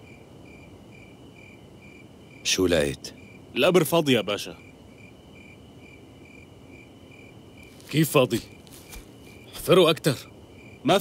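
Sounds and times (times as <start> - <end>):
cricket short chirps: 0.0 - 11.0
cricket steady trill: 0.0 - 11.0.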